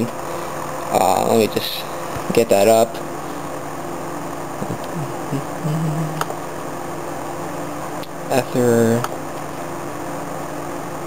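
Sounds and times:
low background hum: 0.0s - 11.0s
low vocal murmurs: 4.6s - 6.3s.

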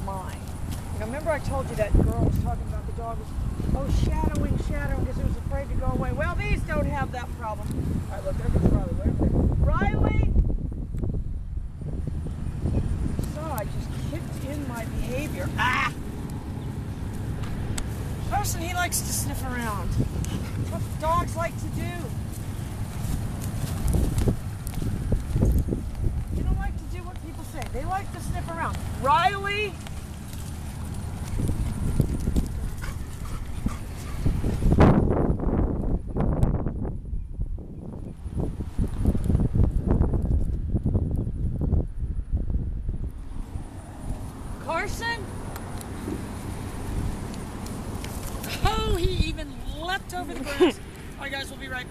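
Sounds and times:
footsteps on dry grass and sand: 12.1s - 35.8s.

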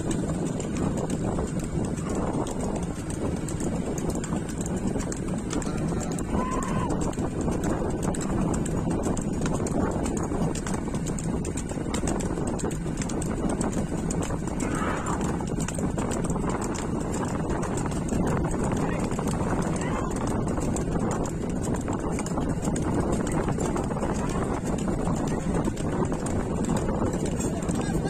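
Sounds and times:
hooves clattering on pavement: 0.0s - 28.0s
steady rumble: 0.0s - 28.0s.

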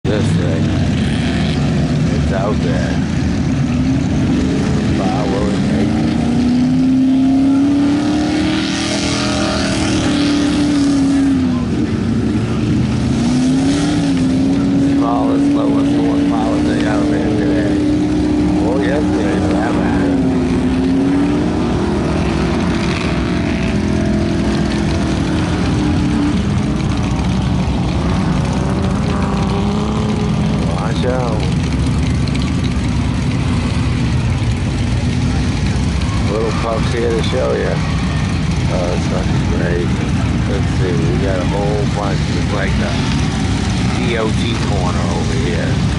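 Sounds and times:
people's voices: 0.0s - 1.0s, 2.0s - 3.2s, 3.8s - 6.4s, 14.2s - 21.9s, 28.0s - 32.4s, 34.5s - 45.9s.

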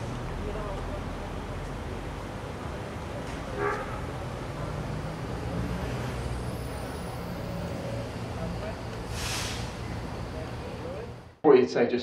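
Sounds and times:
chatter of passers-by: 0.0s - 11.3s
traffic rumble: 0.0s - 11.4s.

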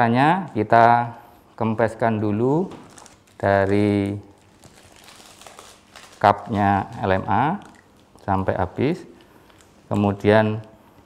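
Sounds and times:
plastic crinkling and rustling: 2.6s - 10.3s.

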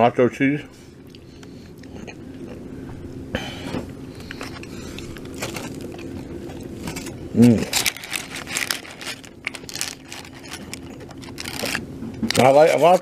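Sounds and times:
steady low hum: 0.0s - 13.0s
person chewing food: 1.0s - 3.0s, 4.0s - 11.8s.

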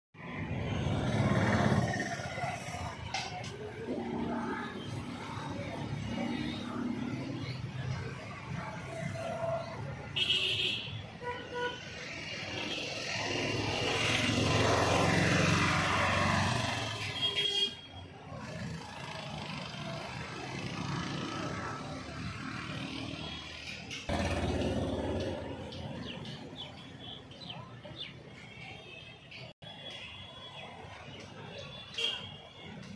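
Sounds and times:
motor vehicle passing: 0.2s - 7.6s
car horn toot: 10.2s - 11.8s.

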